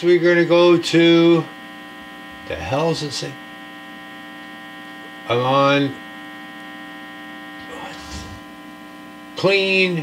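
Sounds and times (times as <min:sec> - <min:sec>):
guitar amplifier hum and buzz: 0:00.0 - 0:10.0.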